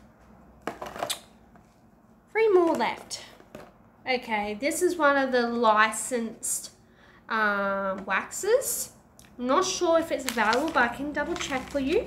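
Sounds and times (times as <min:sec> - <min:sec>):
plastic packaging clicks and rustles: 0:00.6 - 0:01.3, 0:10.1 - 0:12.0.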